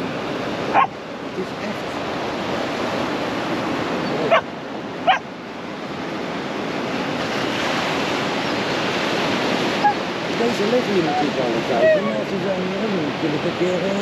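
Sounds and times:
surf breaking on rocky shore: 0.0s - 14.0s.

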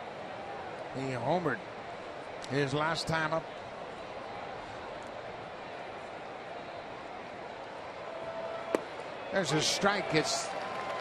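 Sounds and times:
baseball smacking into mitt: 8.7s - 9.1s.

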